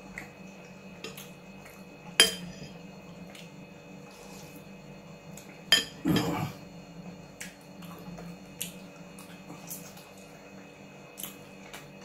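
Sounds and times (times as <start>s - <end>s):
spoon clinking glass bowl: 2.2s - 2.7s.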